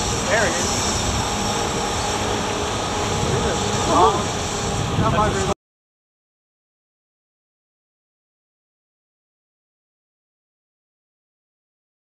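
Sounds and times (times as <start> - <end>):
outboard motor running: 0.0 - 5.5
rush of boat wake: 0.0 - 5.6
wind: 0.0 - 5.6.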